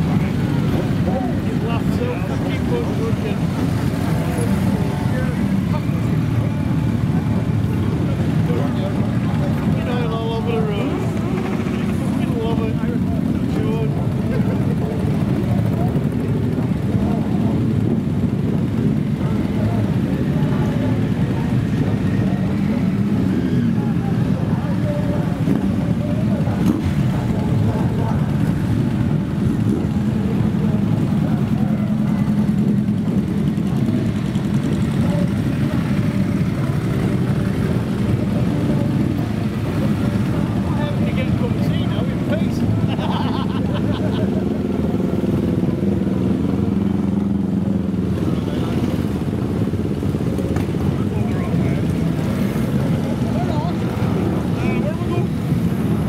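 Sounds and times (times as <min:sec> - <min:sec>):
motorcycle engines rumbling: 0:00.0 - 0:56.0.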